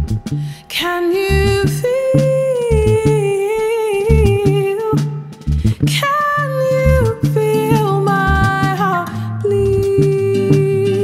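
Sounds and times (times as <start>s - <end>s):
bass line of short low notes: 0.0s - 0.4s, 2.7s - 3.2s, 4.1s - 4.6s, 5.5s - 6.0s, 6.8s - 7.4s
woman singing soul song: 0.5s - 11.0s.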